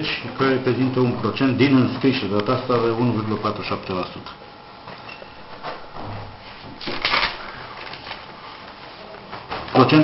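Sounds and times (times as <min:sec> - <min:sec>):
paper rustling: 0:06.5 - 0:10.0.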